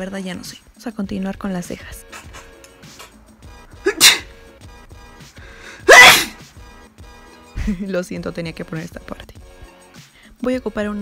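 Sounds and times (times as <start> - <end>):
woman sneezing: 3.8 - 4.4, 5.8 - 6.4.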